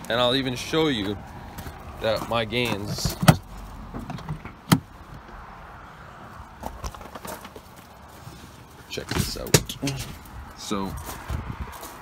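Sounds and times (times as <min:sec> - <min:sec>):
truck door handling noise: 0:01.5 - 0:05.3, 0:09.0 - 0:10.3.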